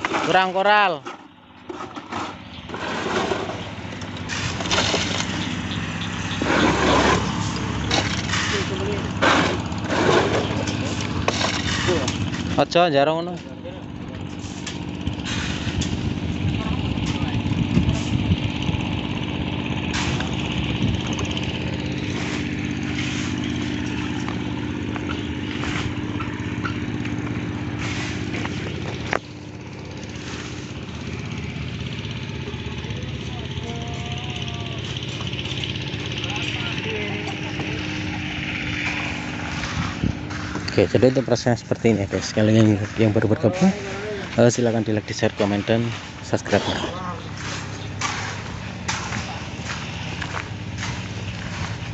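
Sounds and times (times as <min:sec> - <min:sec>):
small engine running: 0:00.0 - 0:51.9.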